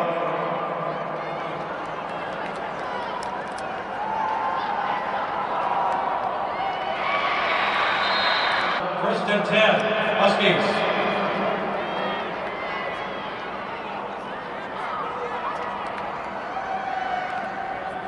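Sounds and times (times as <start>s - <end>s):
crowd voices din: 0.0s - 18.0s
people clapping: 1.7s - 4.7s.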